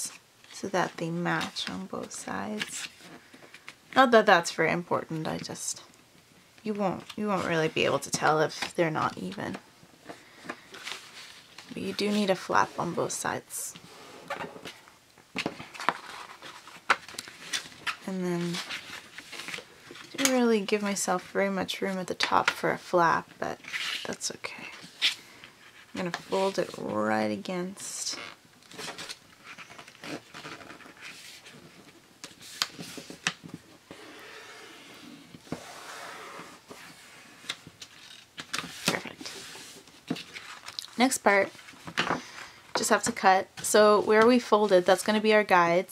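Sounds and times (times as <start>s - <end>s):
paper rustling and sliding: 10.1s - 13.2s, 15.4s - 20.2s, 28.7s - 42.6s.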